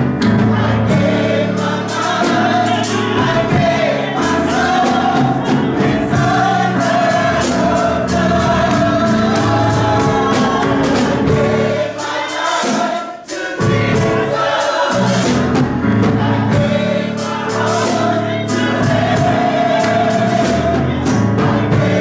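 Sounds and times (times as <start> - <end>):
drum kit with cymbal strikes: 0.0 - 22.0
gospel choir singing: 0.0 - 22.0
keyboard: 0.0 - 22.0.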